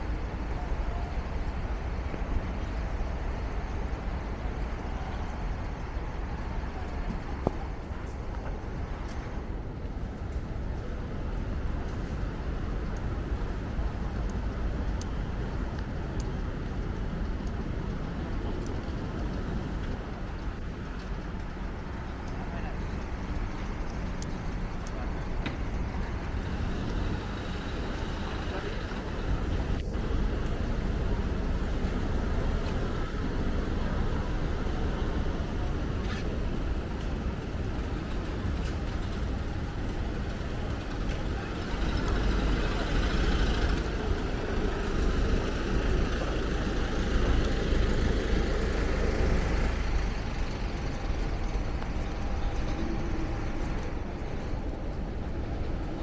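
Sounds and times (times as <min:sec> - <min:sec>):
road traffic rumble: 0:00.0 - 0:56.0
passers-by talking: 0:18.0 - 0:56.0.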